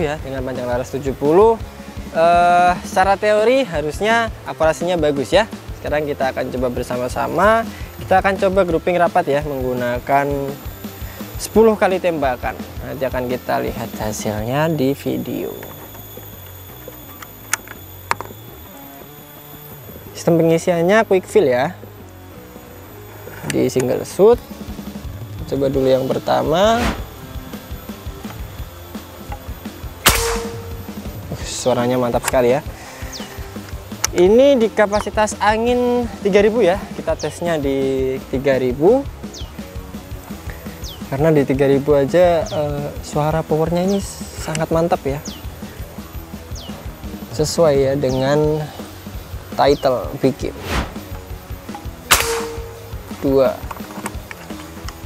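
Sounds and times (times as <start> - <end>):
quiet background music: 0.0 - 55.0
air rifle shot: 26.7 - 27.2, 30.0 - 31.0, 50.6 - 51.1, 52.1 - 53.2.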